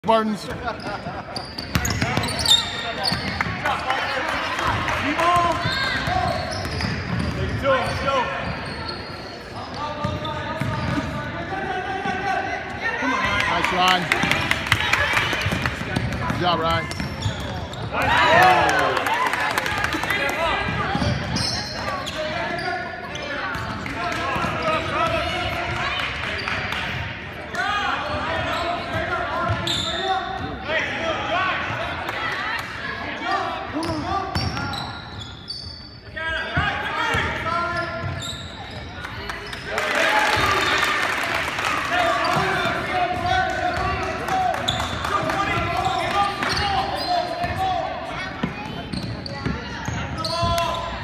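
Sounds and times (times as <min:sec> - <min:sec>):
players and spectators calling out: 0:00.0 - 0:51.0.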